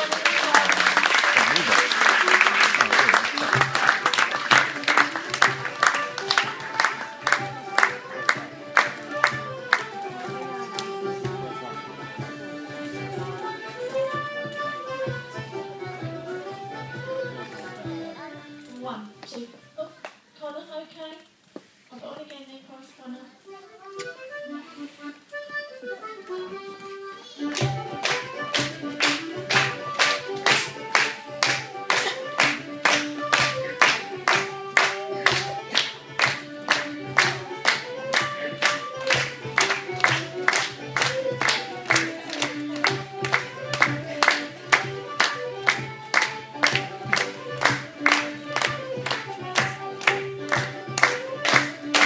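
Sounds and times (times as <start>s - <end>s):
clapping in time: 0.0s - 11.0s, 27.5s - 52.0s
folk dance tune: 0.0s - 20.4s, 23.0s - 52.0s.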